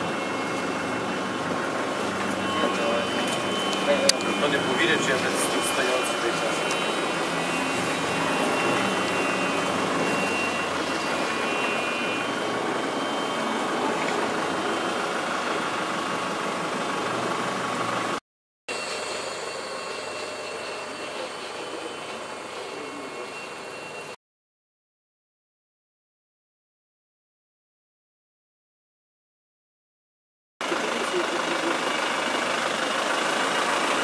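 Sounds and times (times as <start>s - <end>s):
bus engine and road noise: 0.0s - 18.2s, 30.6s - 34.0s.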